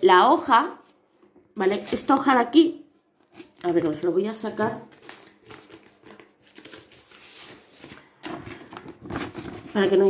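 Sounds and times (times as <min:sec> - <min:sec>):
plastic packaging crinkling: 0:01.6 - 0:02.3, 0:03.2 - 0:10.0.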